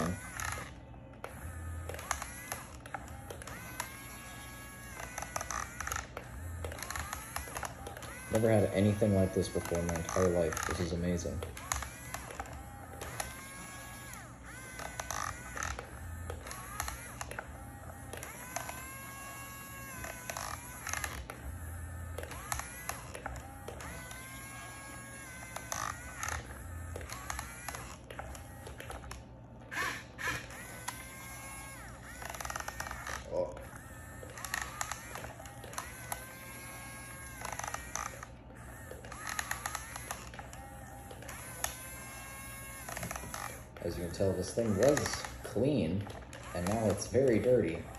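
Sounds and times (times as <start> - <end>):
toy excavator motors whining: 0.0 - 47.9.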